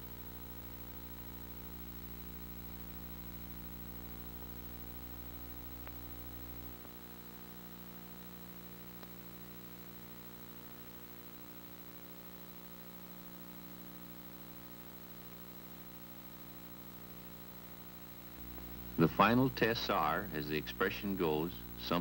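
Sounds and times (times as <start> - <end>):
low electrical hum with hiss: 0.0 - 22.0.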